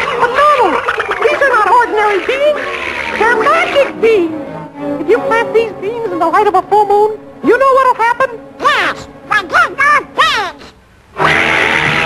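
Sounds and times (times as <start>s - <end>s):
squawking cartoon duck voice: 0.0s - 3.9s, 8.6s - 12.0s
cartoon score and noise: 8.6s - 12.0s.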